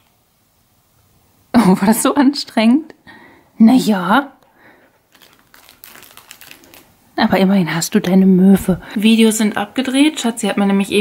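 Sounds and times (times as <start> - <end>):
plush toy crinkling: 5.0 - 7.2.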